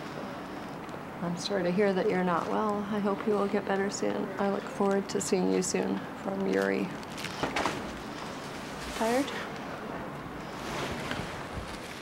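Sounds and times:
room noise rumble and hiss: 0.0 - 12.0.

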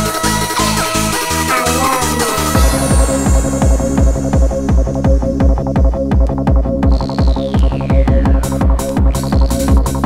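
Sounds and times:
pulsing synth bass: 0.0 - 10.0
high synth lines: 1.5 - 9.8.

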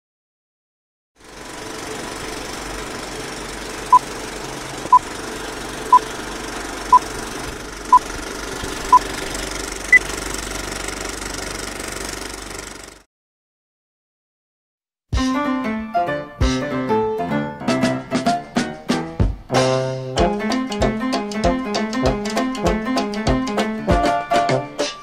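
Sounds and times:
film projector whir: 1.2 - 13.0.

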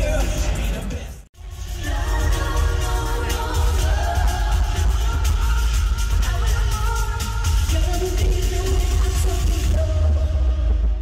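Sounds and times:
loud live pop music: 0.0 - 11.0.

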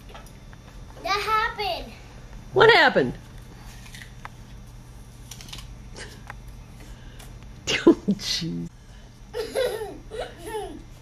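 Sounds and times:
steady low hum: 0.0 - 11.0
child crunching apple: 5.2 - 6.2.

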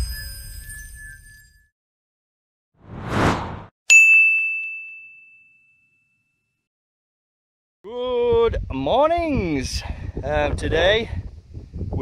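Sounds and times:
rush of noise: 2.9 - 3.7
bright ding: 3.9 - 6.3.

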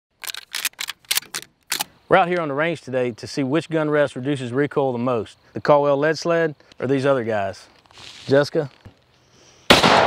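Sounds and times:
shells loaded into shotgun clicking: 0.2 - 1.9.

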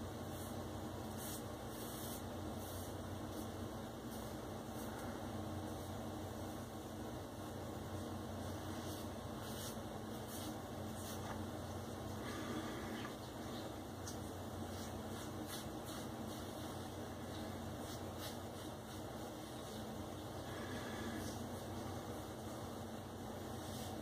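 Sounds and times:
low steady hum: 0.0 - 24.0
fingertips rubbing shaved scalp: 14.0 - 17.0.

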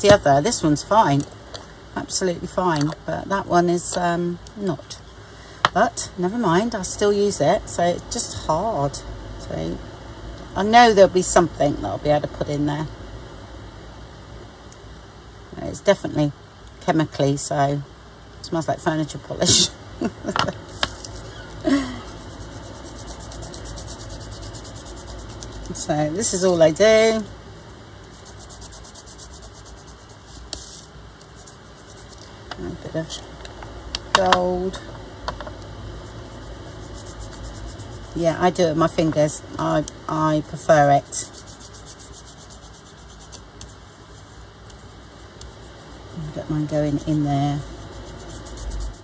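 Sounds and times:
fingertips brushing wax on cardstock: 20.6 - 26.7, 28.0 - 32.3, 36.0 - 38.6, 40.2 - 49.0.

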